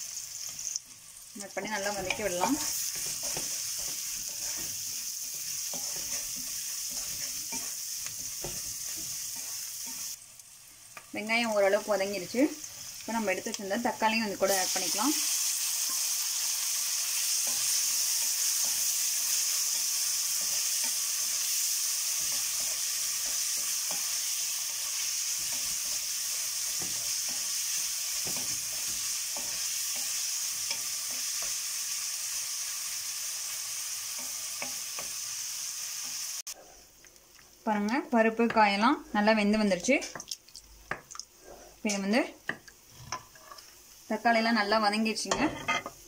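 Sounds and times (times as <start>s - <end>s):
onion and tomato sizzling in oil: 0.0s - 46.0s
spatula scraping and tapping pan: 1.8s - 10.2s, 22.1s - 31.6s.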